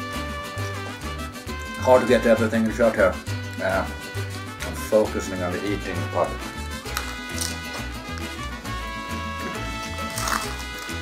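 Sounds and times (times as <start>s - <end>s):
upbeat latin-style music: 0.0s - 11.0s.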